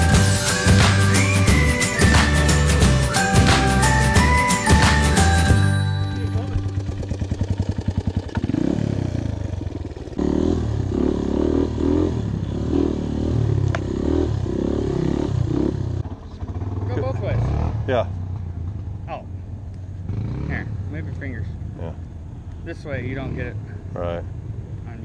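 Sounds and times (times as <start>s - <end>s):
dirt bike engine revving: 6.5s - 18.4s, 20.0s - 20.9s.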